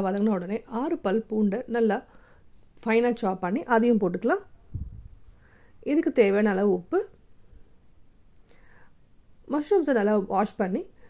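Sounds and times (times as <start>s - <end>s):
steady background hiss: 0.0s - 11.0s
soft intake of breath: 2.1s - 2.5s, 5.2s - 5.8s, 8.4s - 9.1s.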